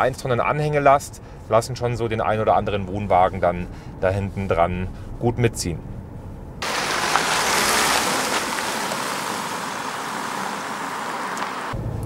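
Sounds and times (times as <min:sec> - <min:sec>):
steady outdoor rushing hiss: 0:06.6 - 0:11.8.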